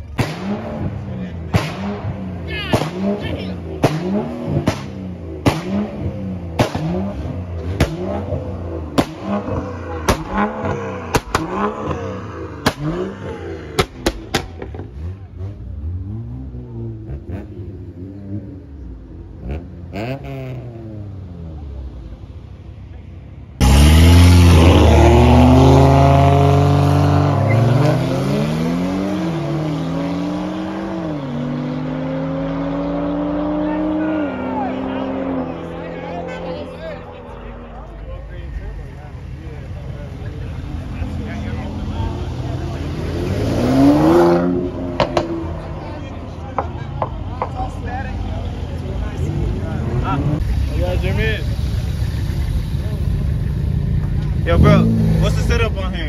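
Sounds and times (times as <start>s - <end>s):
car engine accelerating hard: 0.0s - 22.3s, 23.6s - 56.0s
car accelerating past: 5.6s - 18.6s, 23.6s - 38.2s.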